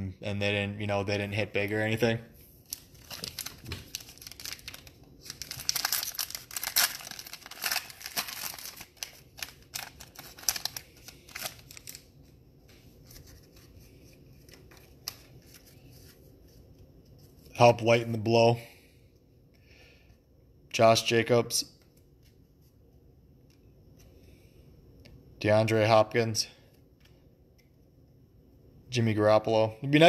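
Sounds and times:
foil wrapper crinkling and tearing: 0:02.6 - 0:12.1
cards being handled: 0:02.7 - 0:17.5.

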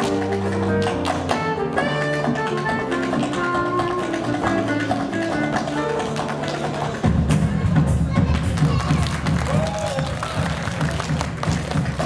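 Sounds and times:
tap shoes striking floor: 0:00.0 - 0:07.0
loud backing music: 0:00.0 - 0:12.0.

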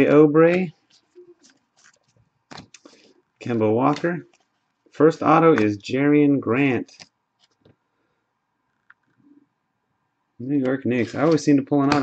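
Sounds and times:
trading cards sliding and clicking: 0:03.8 - 0:04.5, 0:05.3 - 0:05.8, 0:10.6 - 0:12.0.

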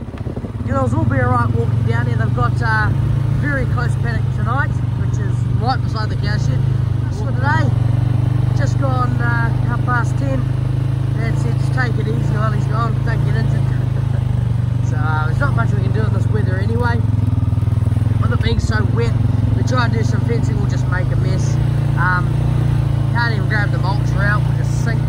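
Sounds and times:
quad bike engine running: 0:00.0 - 0:25.0.

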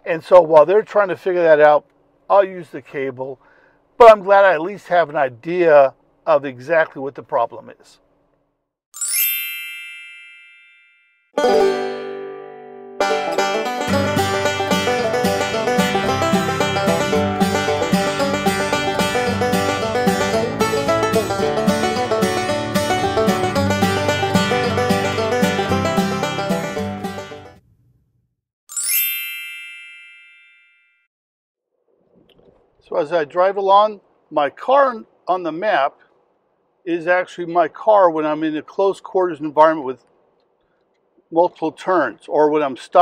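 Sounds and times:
bright chime ringing: 0:09.0 - 0:11.2, 0:28.7 - 0:31.1.

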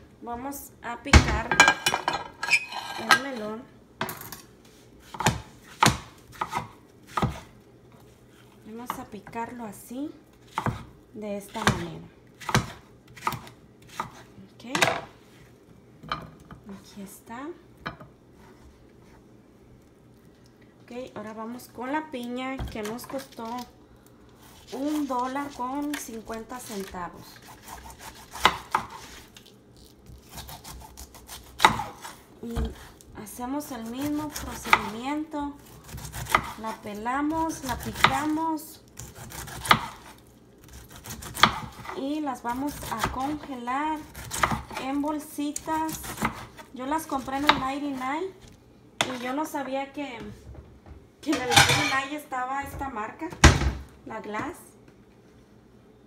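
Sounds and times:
knife chopping on wooden board: 0:05.1 - 0:07.5, 0:10.5 - 0:10.9, 0:11.6 - 0:14.2, 0:27.4 - 0:29.2, 0:30.3 - 0:32.9, 0:33.9 - 0:34.9, 0:35.8 - 0:36.7, 0:37.3 - 0:38.4, 0:39.0 - 0:40.1, 0:40.8 - 0:42.0, 0:42.6 - 0:44.8
knife sawing through fruit rind: 0:26.6 - 0:29.2.

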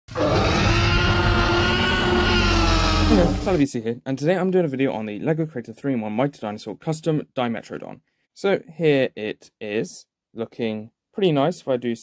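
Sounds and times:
deep rumble: 0:00.1 - 0:03.6
loud roar sound effect: 0:00.1 - 0:03.7.

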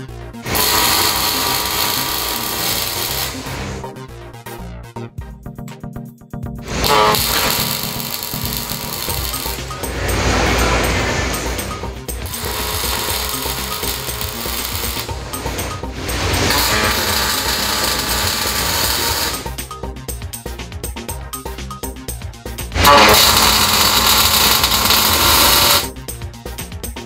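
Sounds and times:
background music: 0:00.0 - 0:27.0
welding arc crackling and buzzing: 0:00.4 - 0:03.8, 0:06.6 - 0:19.7, 0:22.8 - 0:25.9.

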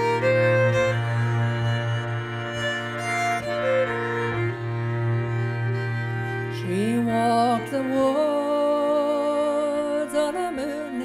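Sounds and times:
fiddle melody: 0:00.0 - 0:11.0
low bowed drone: 0:00.0 - 0:11.0.

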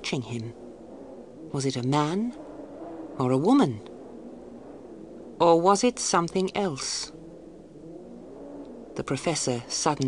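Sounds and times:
faint low drone: 0:00.0 - 0:10.0.

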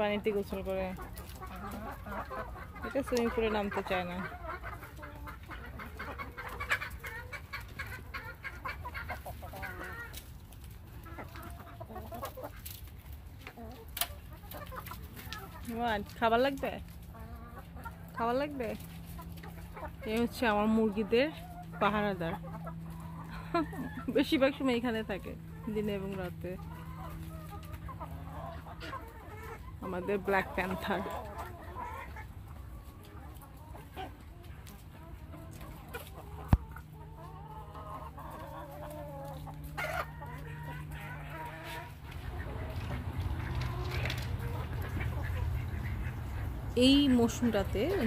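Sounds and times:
hens clucking: 0:00.0 - 0:48.0.

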